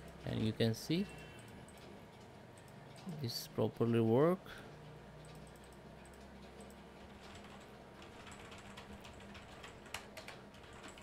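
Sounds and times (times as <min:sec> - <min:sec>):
keyboard typing: 0:05.2 - 0:11.0.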